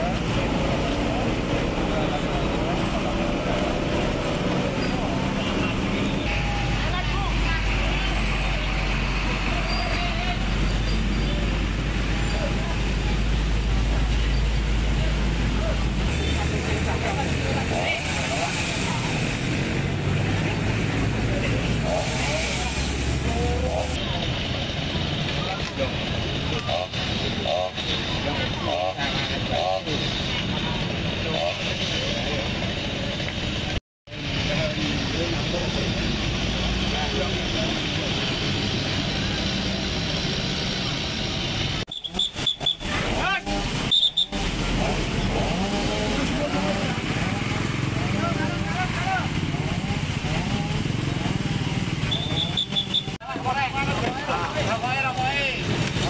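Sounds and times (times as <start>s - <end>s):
indistinct talk of many people: 0.0s - 56.0s
motorcycles and cars passing: 0.0s - 56.0s
road traffic: 0.0s - 56.0s.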